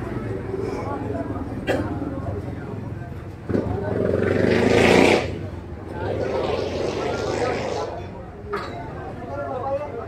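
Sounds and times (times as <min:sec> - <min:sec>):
murmur of people talking: 0:00.0 - 0:10.0.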